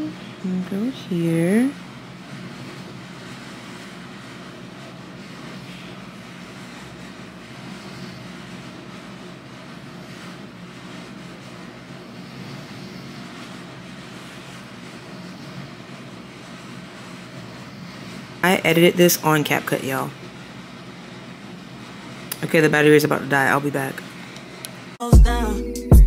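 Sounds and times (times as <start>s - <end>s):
air conditioner humming: 0.0s - 26.0s.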